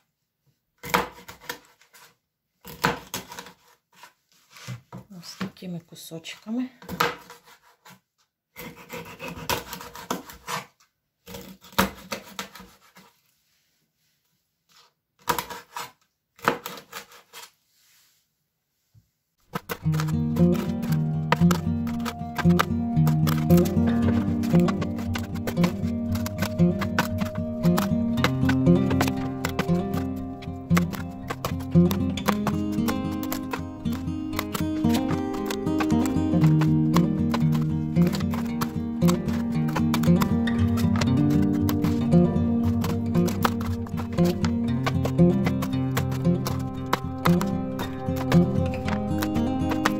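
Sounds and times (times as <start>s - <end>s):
knife cutting on plastic board: 0.8s - 4.8s, 6.8s - 8.0s, 8.6s - 13.1s, 14.7s - 17.6s, 19.4s - 49.9s.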